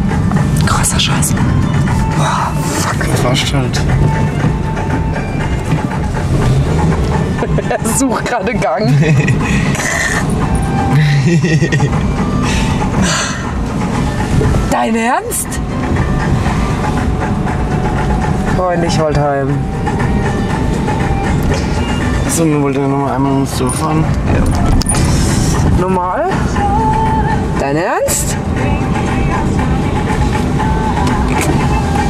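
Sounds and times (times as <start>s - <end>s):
car road and engine noise: 0.0s - 32.0s.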